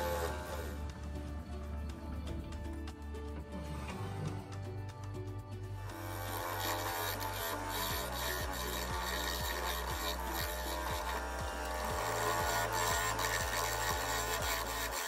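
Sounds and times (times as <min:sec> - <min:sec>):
lathe tool scraping wood: 0:00.0 - 0:04.9, 0:05.8 - 0:15.0
background music with bass line: 0:00.0 - 0:15.0.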